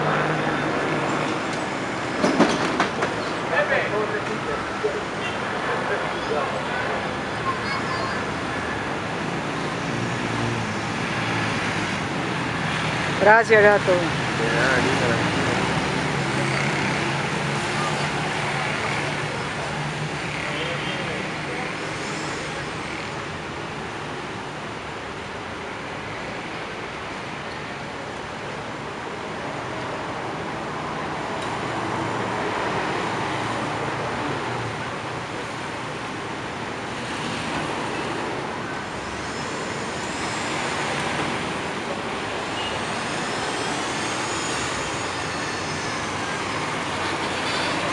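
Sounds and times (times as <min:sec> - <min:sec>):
street traffic rush: 0:00.0 - 0:47.9.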